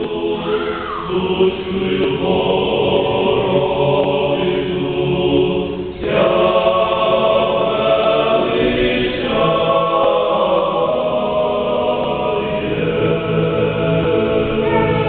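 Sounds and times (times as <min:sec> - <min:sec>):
men's choir singing chant: 0:00.0 - 0:15.0.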